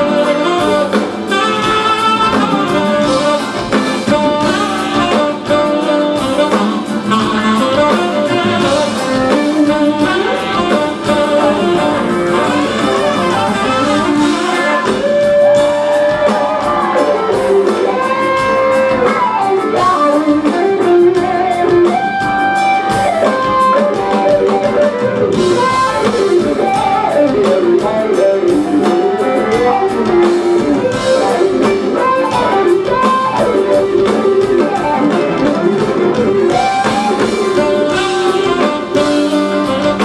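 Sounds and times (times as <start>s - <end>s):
bass guitar: 0.0s - 40.0s
drum kit: 0.0s - 40.0s
electric guitar lead line: 0.0s - 40.0s
percussion: 0.0s - 40.0s.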